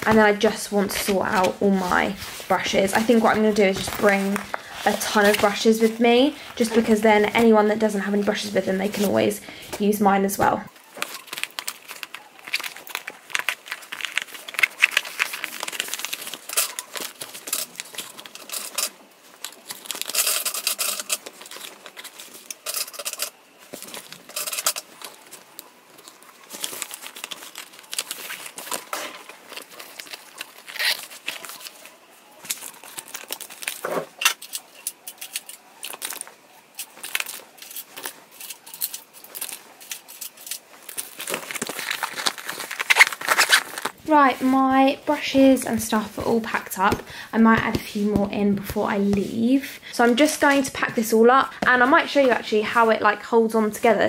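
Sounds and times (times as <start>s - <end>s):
brushes rustling in fabric holder: 0.0s - 12.7s.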